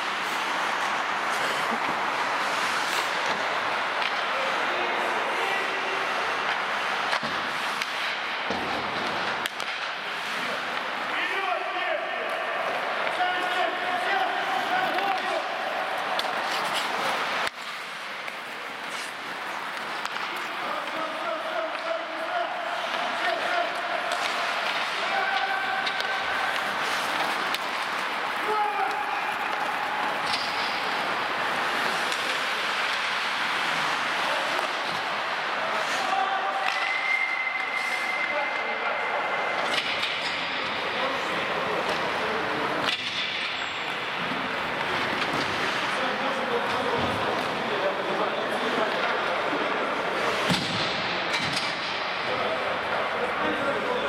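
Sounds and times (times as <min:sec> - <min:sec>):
hockey sticks and puck clacking: 0:00.0 - 0:38.6, 0:39.2 - 0:54.0
skates scraping ice: 0:00.0 - 0:54.0
players shouting: 0:10.8 - 0:17.5, 0:18.4 - 0:39.5.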